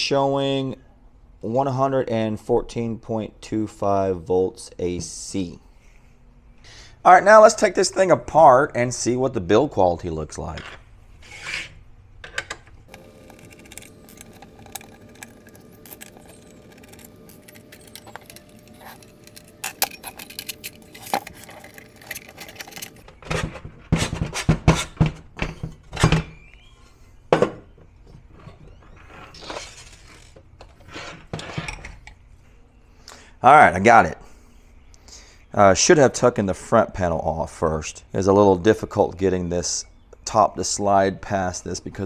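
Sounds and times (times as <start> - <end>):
faint steady hum: 11.8 - 23.1
screws being unscrewed: 12.9 - 23.0.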